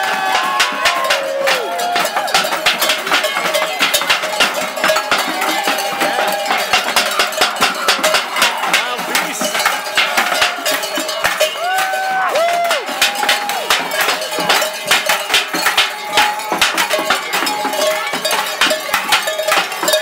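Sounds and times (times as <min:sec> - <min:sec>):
cowbells clanging: 0:00.0 - 0:20.0.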